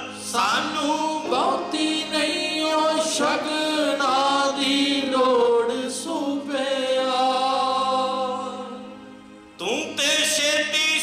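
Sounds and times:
men singing a hymn: 0.0s - 9.0s
harmonium drone: 0.0s - 11.0s.

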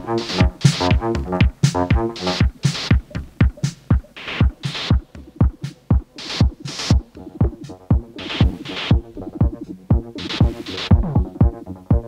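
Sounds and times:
pitch-falling kick beat: 0.0s - 12.0s.

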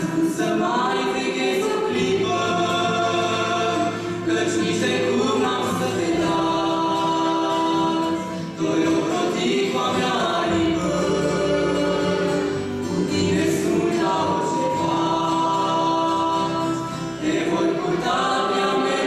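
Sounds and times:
acoustic guitar: 0.0s - 19.0s
woman and man singing: 0.0s - 19.0s.

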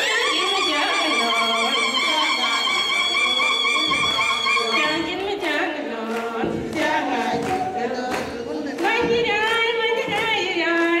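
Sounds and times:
voices singing together: 0.0s - 11.0s.

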